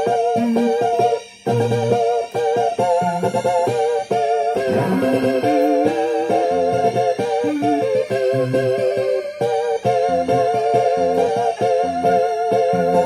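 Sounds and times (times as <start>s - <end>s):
electronic keyboard playing: 0.0s - 13.0s.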